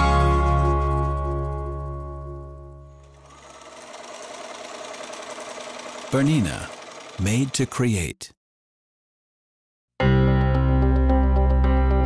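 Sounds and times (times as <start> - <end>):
electric sewing machine running: 0.0 - 7.8.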